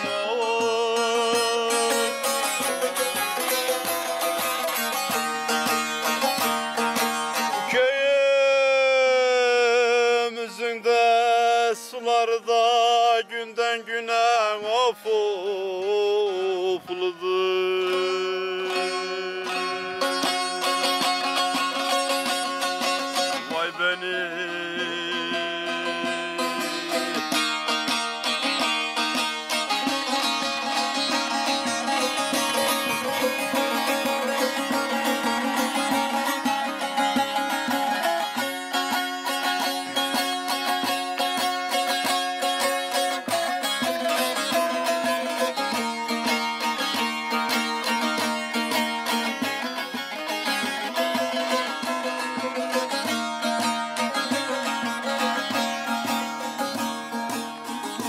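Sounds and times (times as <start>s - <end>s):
saz plucked and strummed: 0.0s - 14.8s, 15.4s - 58.0s.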